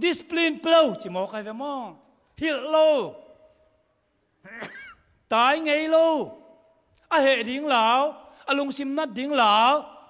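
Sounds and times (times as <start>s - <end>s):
man speaking: 0.0s - 3.4s, 4.5s - 10.0s.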